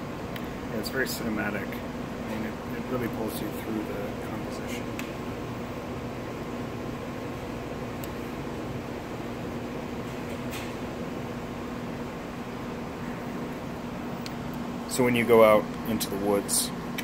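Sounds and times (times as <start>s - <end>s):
machine hum with hiss: 0.0s - 17.0s.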